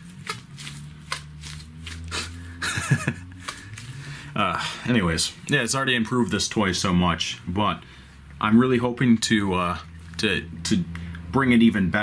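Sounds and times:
gloved hands rubbing and creaking: 0.0 - 4.4
low steady hum: 0.0 - 12.0.

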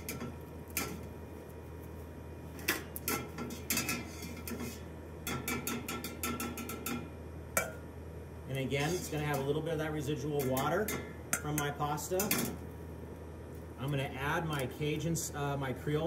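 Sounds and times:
steady low hum: 0.0 - 16.0
metal utensils clinking on pot: 2.7 - 7.0, 10.4 - 12.6.

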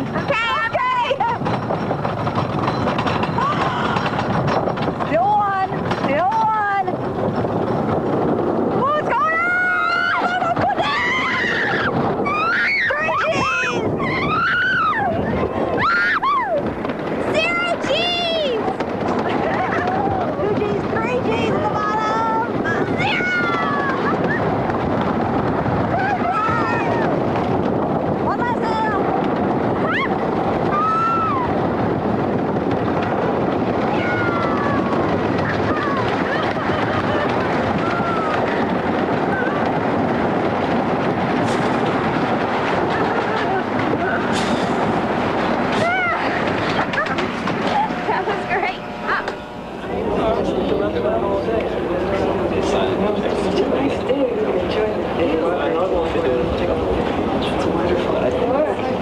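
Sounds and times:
roller coaster rumbling and rattling: 0.0 - 59.0
riders screaming and whooping: 2.7 - 4.3, 8.8 - 20.6, 21.9 - 25.1, 25.7 - 27.4, 28.8 - 32.2, 32.8 - 41.0, 45.7 - 48.2.

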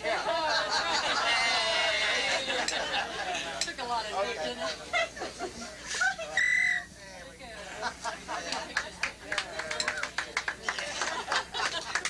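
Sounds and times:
people laughing: 0.0 - 6.4, 7.4 - 12.0
party chatter: 0.0 - 12.0
high whistle: 6.3 - 6.9
rising whistle: 6.4 - 6.9.

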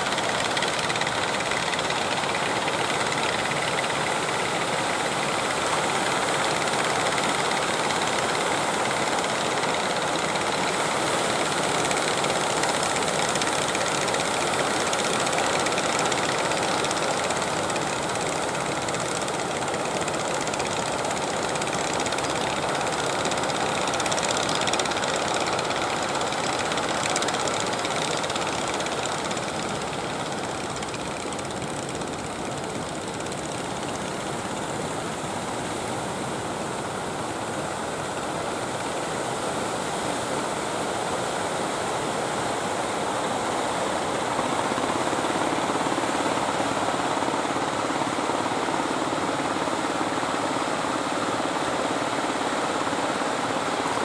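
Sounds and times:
boat engine running: 0.0 - 40.1.

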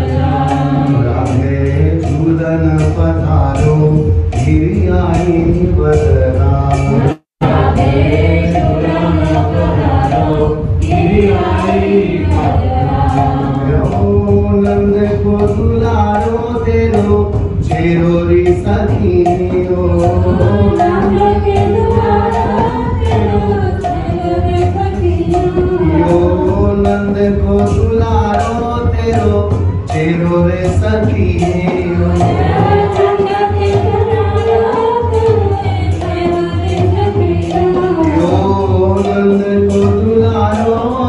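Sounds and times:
choir chanting devotional melody: 0.0 - 41.0
high-pitched rhythmic beat: 0.0 - 41.0.

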